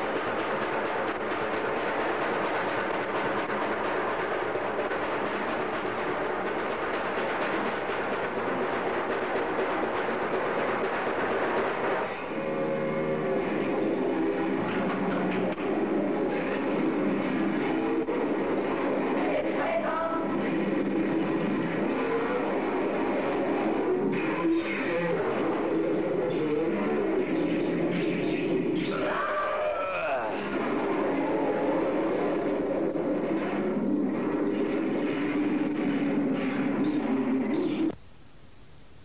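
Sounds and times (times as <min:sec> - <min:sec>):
distorted guitar: 0:00.0 - 0:38.0
drums: 0:00.0 - 0:39.0.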